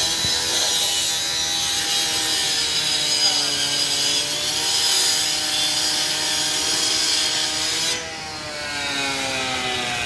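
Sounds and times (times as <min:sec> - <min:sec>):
rotary saw cutting sheet metal: 0:00.0 - 0:10.0.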